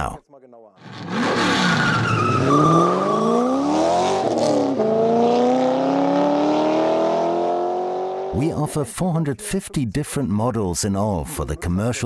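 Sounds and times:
car engine revving through gears: 0.8 - 8.4
high falling squeal: 1.5 - 4.0.

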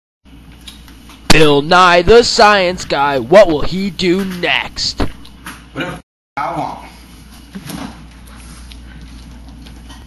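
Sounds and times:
low hum and hiss: 0.3 - 9.9.

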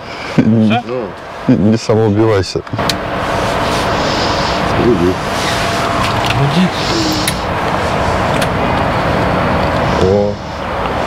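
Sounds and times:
starter motor cranking engine: 4.7 - 8.9.

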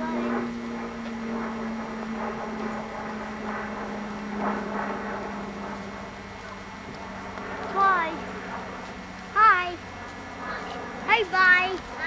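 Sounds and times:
low drone dropping in pitch: 0.0 - 12.0.

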